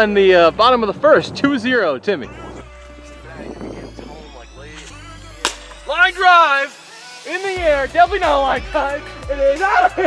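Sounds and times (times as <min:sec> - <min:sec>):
faint voices: 0:01.2 - 0:10.0
thin high tone rising in pitch: 0:02.3 - 0:08.6.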